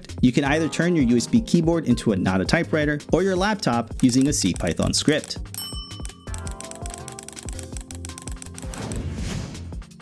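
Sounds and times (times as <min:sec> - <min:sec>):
background music: 0:00.0 - 0:10.0
laptop keystrokes: 0:04.0 - 0:09.0.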